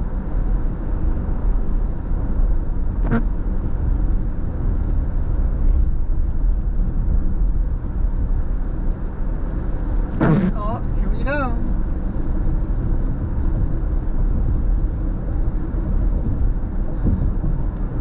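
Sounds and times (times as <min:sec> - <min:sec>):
tyre noise on wet road: 0:00.0 - 0:18.0.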